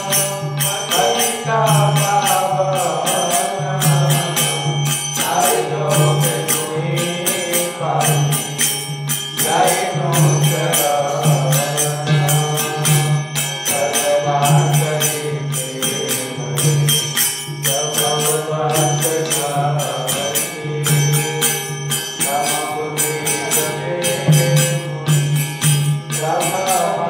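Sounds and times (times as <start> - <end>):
hand cymbals: 0.0 - 27.0.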